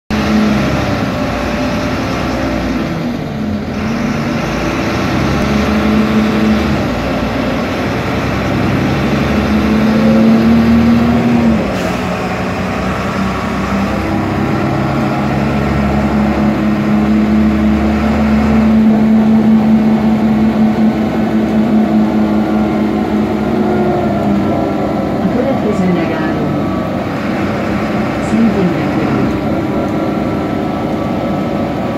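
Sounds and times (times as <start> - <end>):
bus diesel engine drone: 0.1 - 31.9
road noise: 0.1 - 31.9.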